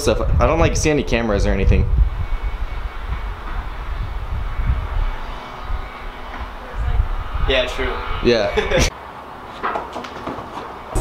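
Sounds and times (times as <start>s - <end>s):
low rumbling drone: 0.0s - 8.9s.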